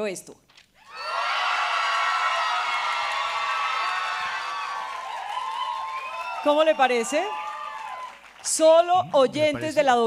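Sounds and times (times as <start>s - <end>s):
audience cheering and whooping: 0.8s - 8.4s.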